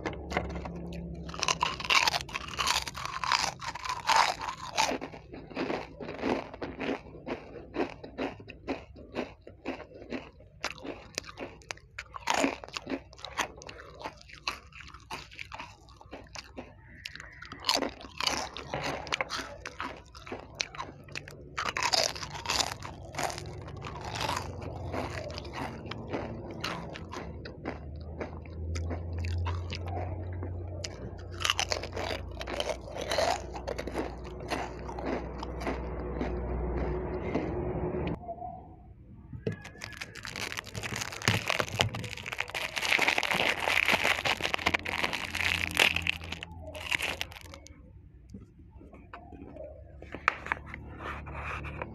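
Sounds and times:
crunching and chewing snacks: 0:00.0 - 0:37.5, 0:39.4 - 0:51.9
low steady hum: 0:18.5 - 0:39.7.

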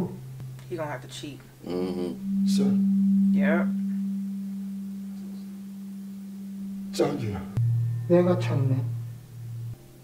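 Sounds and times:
low electronic tone: 0:00.0 - 0:00.7, 0:01.6 - 0:10.0.

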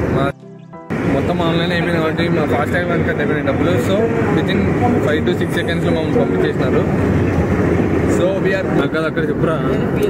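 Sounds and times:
car engine drone: 0:00.0 - 0:10.0
road noise: 0:00.0 - 0:10.0
man talking: 0:01.0 - 0:07.0, 0:08.1 - 0:09.9.

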